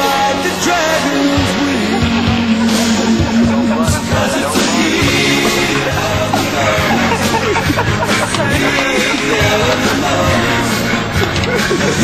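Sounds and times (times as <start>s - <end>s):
loud music with held note: 0.0s - 12.0s.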